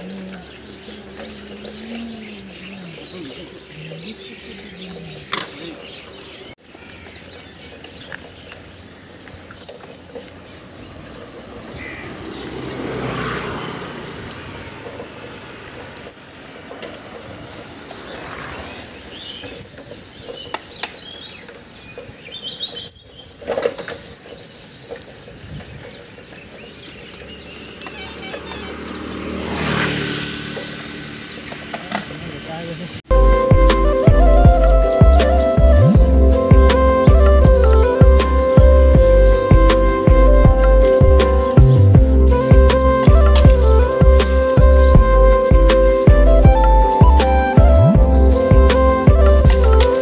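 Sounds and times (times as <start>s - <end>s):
birds chirping: 0.0s - 50.0s
road and wind noise: 0.0s - 50.0s.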